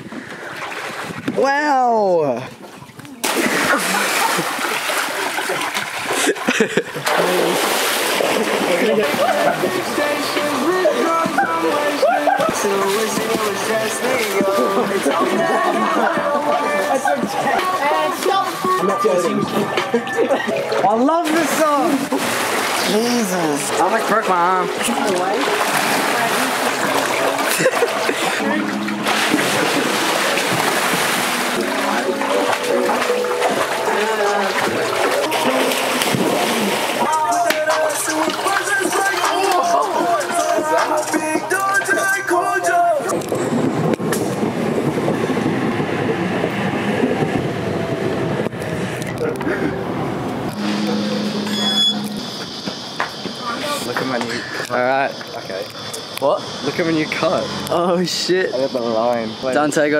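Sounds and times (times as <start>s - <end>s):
water splashing in a pool: 0.0s - 59.9s
people talking: 6.2s - 22.2s, 22.8s - 30.7s, 31.4s - 43.2s, 50.5s - 59.9s
young men shouting and laughing: 8.4s - 20.8s, 33.8s - 43.1s
pop song playing: 8.5s - 43.2s.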